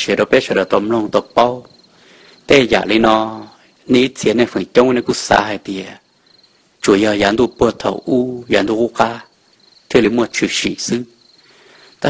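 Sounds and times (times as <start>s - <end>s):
man narrating: 0.0s - 1.7s, 2.4s - 6.1s, 6.8s - 11.2s
crickets chirring: 0.0s - 12.0s.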